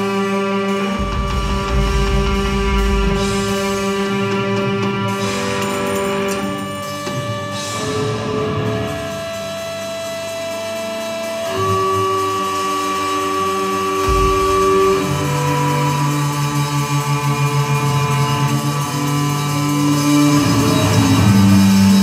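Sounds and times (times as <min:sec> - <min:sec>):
violin guitar and drums playing: 0:00.0 - 0:22.0.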